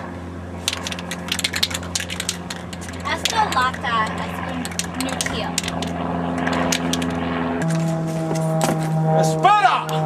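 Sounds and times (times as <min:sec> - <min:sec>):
spray can ball rattling: 0:00.6 - 0:03.9, 0:04.6 - 0:07.2.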